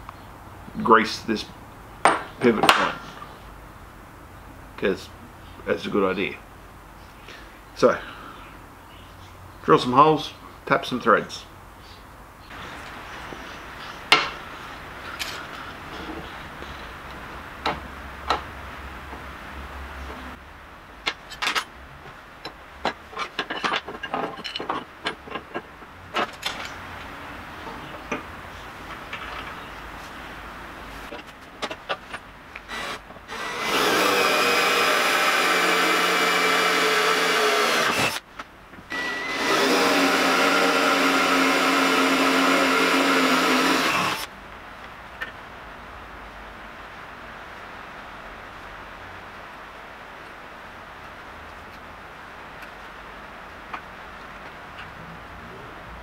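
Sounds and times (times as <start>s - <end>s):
hand tools clinking and knocking: 2.0s - 3.0s, 22.4s - 29.6s
electric drill boring into steel: 32.7s - 38.2s, 38.9s - 44.3s.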